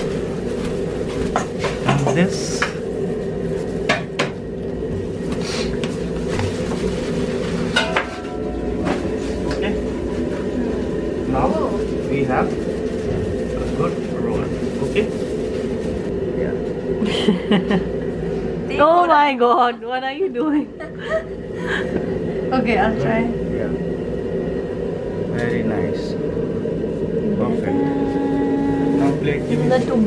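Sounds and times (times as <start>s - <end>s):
kitchen mechanical hum: 0.0s - 30.0s
utensils and dishes clattering: 1.1s - 2.8s, 7.6s - 9.8s.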